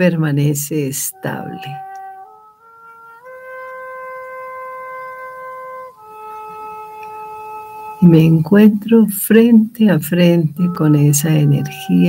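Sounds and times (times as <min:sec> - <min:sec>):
soft meditation music: 0:00.0 - 0:12.0.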